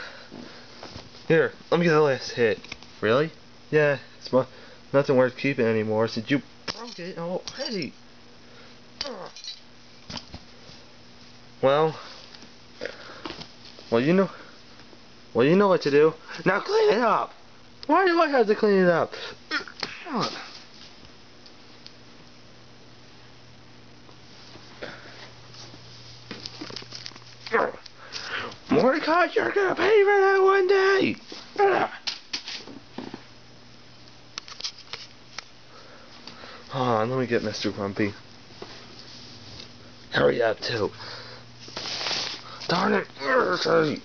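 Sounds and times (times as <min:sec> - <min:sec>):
faint low hum: 0:00.0 - 0:44.0
person speaking: 0:42.5 - 0:44.0.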